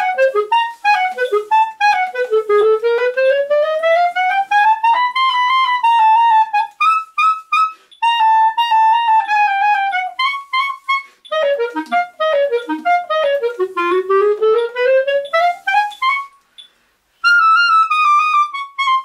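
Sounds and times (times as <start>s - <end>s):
solo clarinet: 0.0s - 16.5s, 17.2s - 19.0s.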